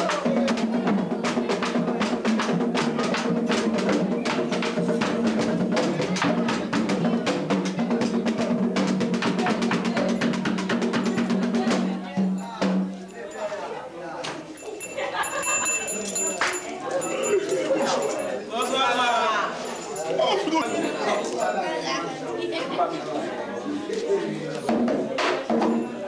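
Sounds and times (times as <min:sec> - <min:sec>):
fast ceremonial drumming: 0:00.0 - 0:13.1, 0:24.7 - 0:26.0
scattered crowd sounds: 0:00.0 - 0:26.0.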